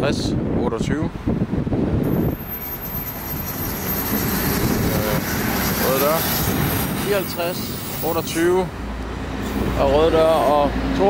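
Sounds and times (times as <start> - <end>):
diesel train rumbling: 1.4 - 11.0
thin high whine: 2.1 - 8.3.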